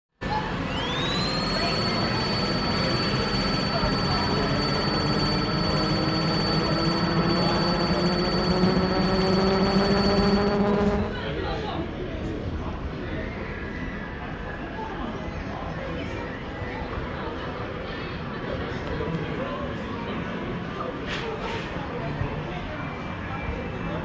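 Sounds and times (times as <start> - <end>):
shop ambience: 0.2 - 11.5
high electronic tone: 0.5 - 11.4
low rising drone: 0.5 - 11.4.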